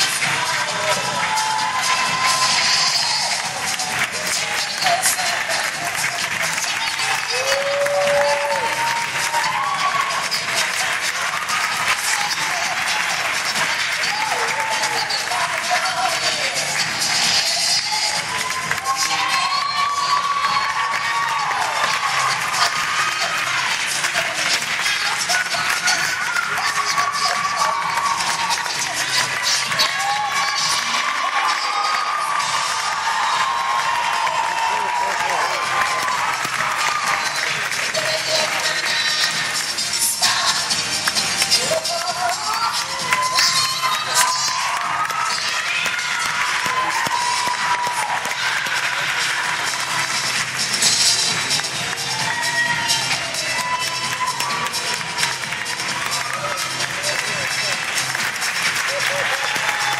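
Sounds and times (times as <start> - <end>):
audience applauding: 0.0 - 59.9
music over speakers: 0.0 - 59.9.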